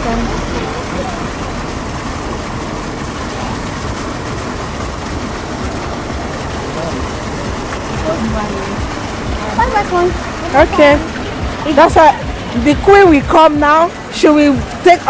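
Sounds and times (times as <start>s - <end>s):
fountain water splashing into basin: 0.0s - 15.0s
outdoor background noise: 0.0s - 15.0s.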